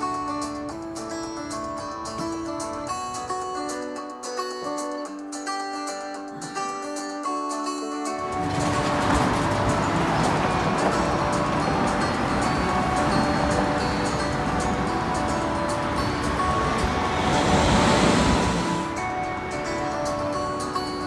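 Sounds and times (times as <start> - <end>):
street traffic noise: 0.0 - 3.9, 8.1 - 21.0
background music: 0.0 - 21.0
car passing: 8.2 - 21.0.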